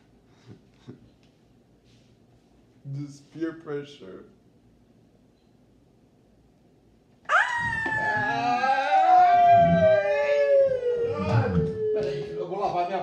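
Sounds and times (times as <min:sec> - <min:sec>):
person howling yell: 0:07.3 - 0:12.6.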